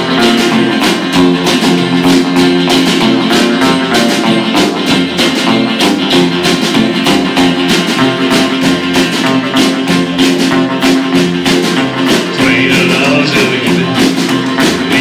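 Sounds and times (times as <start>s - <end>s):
drums: 0.0s - 15.0s
electric guitar: 0.0s - 15.0s
strummed acoustic guitar: 0.0s - 15.0s
upright bass: 0.0s - 15.0s.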